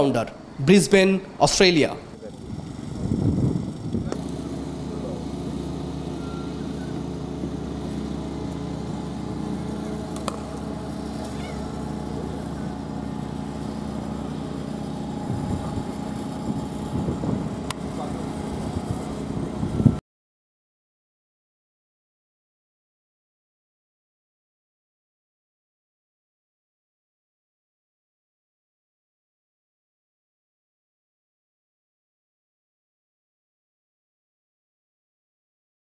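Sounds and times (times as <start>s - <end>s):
low machine hum: 0.0s - 20.0s
faint voices: 11.1s - 13.7s.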